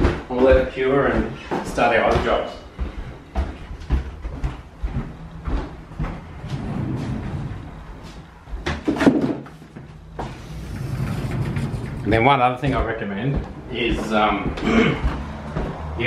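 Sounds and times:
footsteps on wooden floor: 0.0s - 16.0s
sliding wardrobe door opening: 6.4s - 8.2s, 10.2s - 12.8s.

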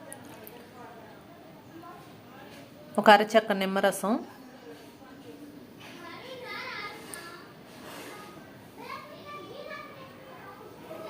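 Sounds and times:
children talking and playing: 0.0s - 11.0s.

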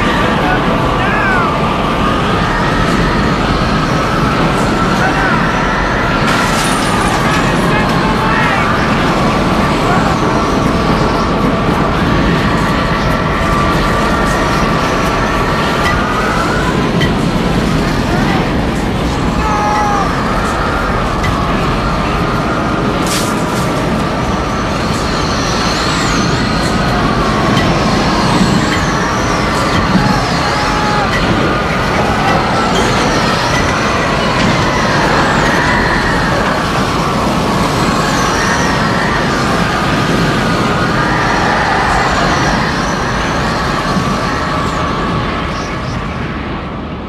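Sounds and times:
howling whistles: 0.0s - 46.6s
roaring tornado wind: 0.0s - 47.0s.

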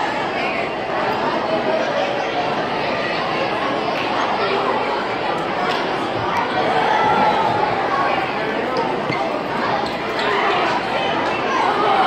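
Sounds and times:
crowd chattering in a hall: 0.0s - 12.0s.

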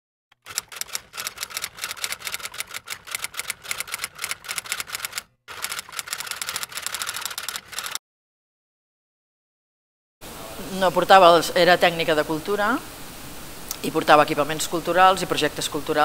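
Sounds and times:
typewriter key clicks: 0.4s - 8.0s.

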